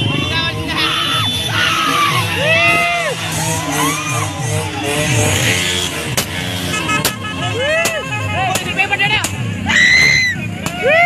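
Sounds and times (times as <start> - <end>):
motorcycle engines running: 0.0 - 11.0.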